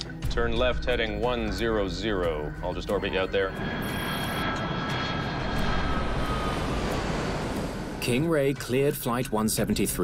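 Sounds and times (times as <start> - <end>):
jet engines rumbling and whining: 1.2 - 10.0.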